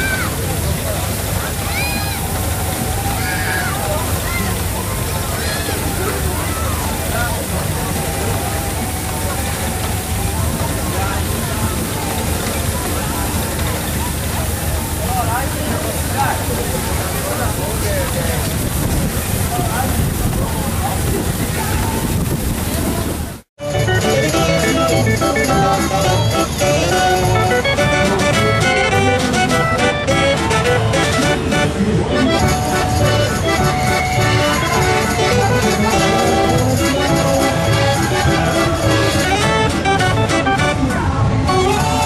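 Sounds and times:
crowd chatter: 0.0 - 42.0
steam engine hissing: 0.0 - 42.0
fair organ playing: 23.6 - 42.0.

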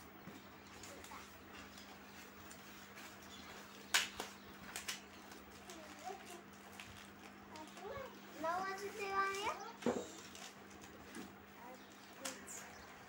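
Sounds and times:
plastic packet rustling: 0.8 - 11.2.

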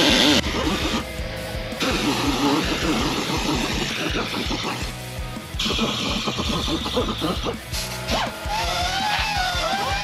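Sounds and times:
background guitar music: 0.0 - 10.0.

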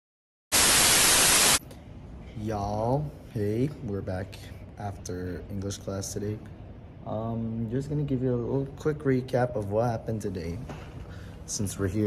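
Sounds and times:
static hiss burst: 0.5 - 1.6.

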